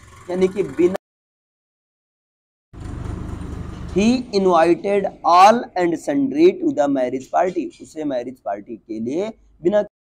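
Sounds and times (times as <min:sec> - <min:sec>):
man speaking: 0:00.3 - 0:01.0, 0:04.0 - 0:10.0.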